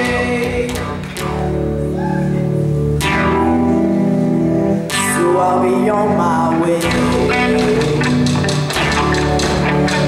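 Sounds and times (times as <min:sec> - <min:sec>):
electric guitar and bass chords: 0:00.0 - 0:10.0.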